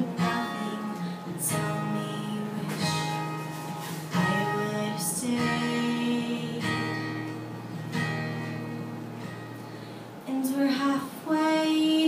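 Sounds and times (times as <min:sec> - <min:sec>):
woman singing: 0:00.0 - 0:07.4, 0:10.2 - 0:12.0
acoustic guitar chord: 0:00.0 - 0:12.0.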